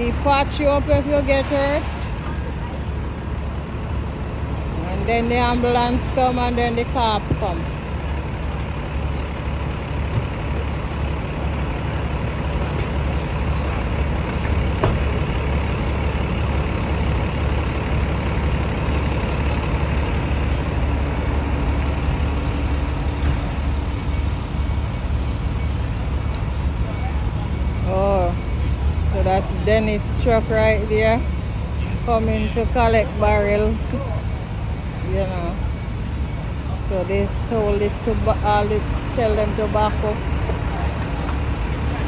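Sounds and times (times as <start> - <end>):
diesel truck engine idling: 0.0 - 42.0
street noise: 0.0 - 42.0.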